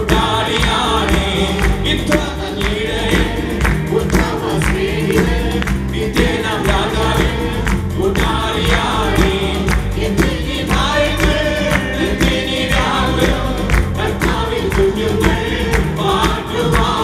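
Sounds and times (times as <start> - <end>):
keyboard and guitar accompaniment: 0.0 - 17.0
steady beat with strong bass: 0.0 - 17.0
voices singing together: 0.0 - 17.0.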